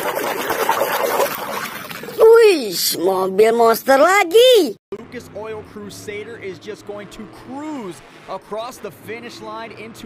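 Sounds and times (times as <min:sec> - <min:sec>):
voices talking: 0:02.2 - 0:10.0
truck engine humming: 0:04.9 - 0:09.9.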